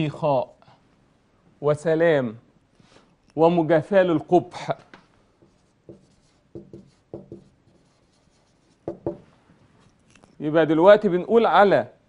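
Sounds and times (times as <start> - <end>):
marker writing on whiteboard: 5.4 - 10.1.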